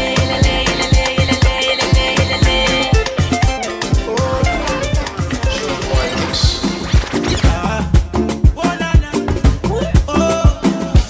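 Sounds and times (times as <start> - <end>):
hip-hop dj mix: 0.0 - 11.0
dj scratch effect: 2.5 - 8.1.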